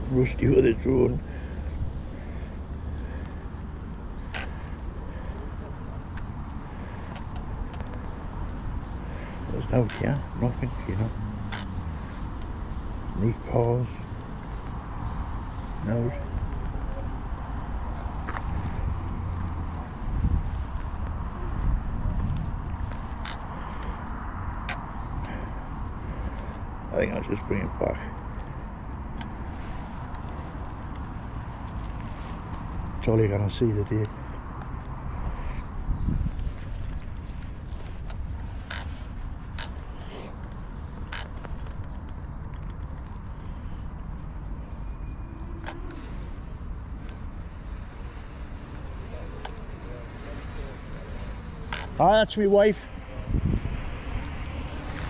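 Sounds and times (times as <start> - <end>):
wind buffeting microphone: 18.7 - 23.4, 35.2 - 39.6, 53.0 - 55.0.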